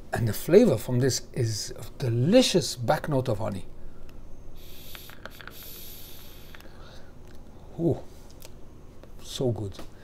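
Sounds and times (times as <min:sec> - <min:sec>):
vape atomizer hiss: 0:04.6 - 0:06.8.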